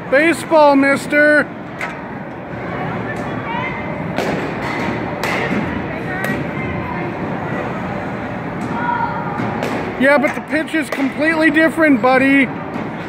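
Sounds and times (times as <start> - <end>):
steady indoor din: 0.0 - 13.0.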